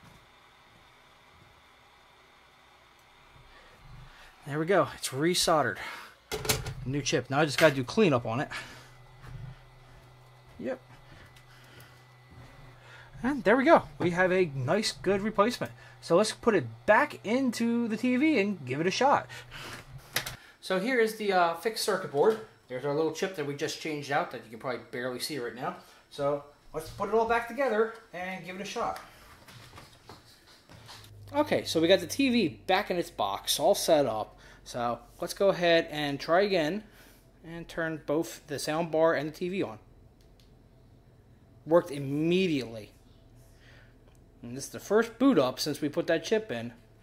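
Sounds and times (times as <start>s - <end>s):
low hum: 0.2s - 29.3s.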